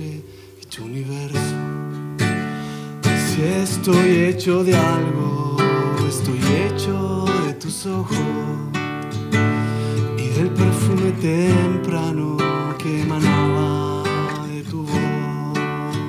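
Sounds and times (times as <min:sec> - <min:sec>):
classical guitar strummed and plucked: 0:00.0 - 0:16.0.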